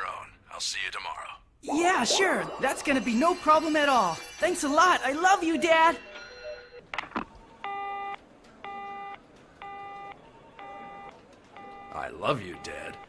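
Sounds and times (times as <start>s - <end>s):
telephone busy tone beeps: 7.6s - 13.0s.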